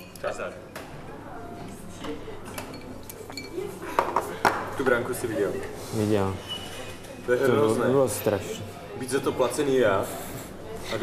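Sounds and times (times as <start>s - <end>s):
glasses and crockery clinking: 0.0s - 0.3s, 2.4s - 4.4s.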